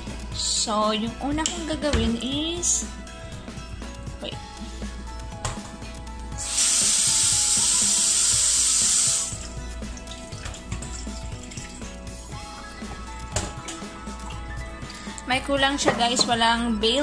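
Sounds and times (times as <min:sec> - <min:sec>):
background music: 0:00.0 - 0:17.0
loud steady hiss: 0:06.4 - 0:09.5.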